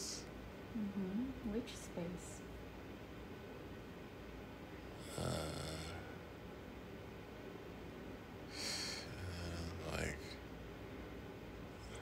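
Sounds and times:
man breathing raspy snore: 5.0 - 6.0.

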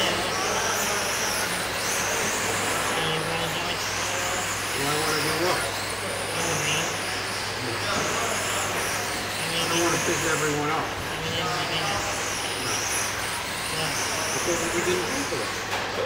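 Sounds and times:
rc car motors whining: 0.0 - 16.0.

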